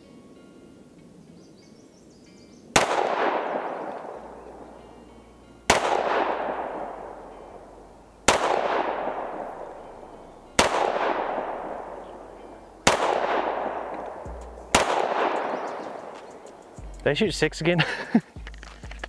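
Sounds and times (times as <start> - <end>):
pistol shots with echo: 2.7 - 4.8, 5.6 - 16.7.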